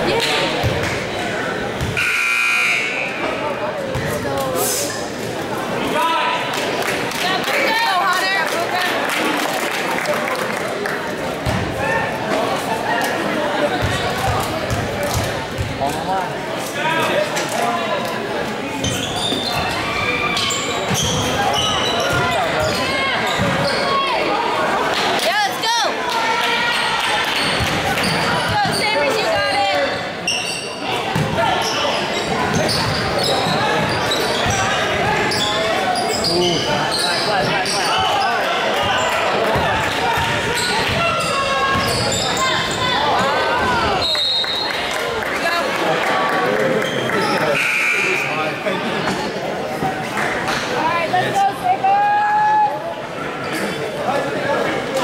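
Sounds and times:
basketball bouncing on court: 13.8 - 15.8.

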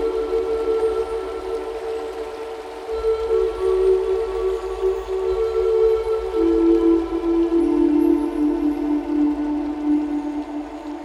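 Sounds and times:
flute music with long held notes: 0.0 - 11.0
soft background pad: 0.0 - 11.0.

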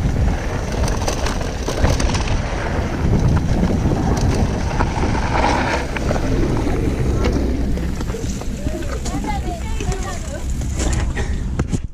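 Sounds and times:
wind rumble on microphone: 0.0 - 11.9
indistinct voices talking: 5.9 - 10.9.

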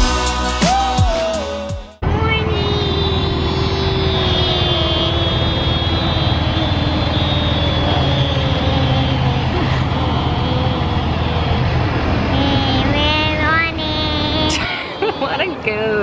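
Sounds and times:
vehicle engine rumbling: 2.0 - 14.7.

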